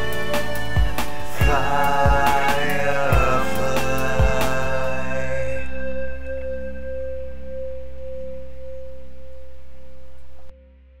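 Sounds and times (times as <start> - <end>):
low bass tone: 0.0 - 11.0
sustained synthesizer chord: 0.0 - 11.0.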